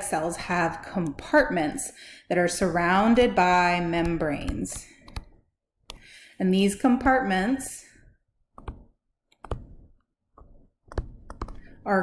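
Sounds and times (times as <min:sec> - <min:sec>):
pen tapping and scraping on screen: 0:03.9 - 0:06.0, 0:08.5 - 0:11.8.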